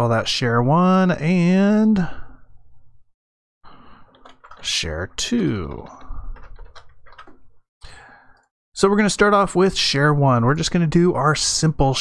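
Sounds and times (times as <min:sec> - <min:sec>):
computer keyboard typing: 0:04.0 - 0:04.7, 0:05.4 - 0:07.6.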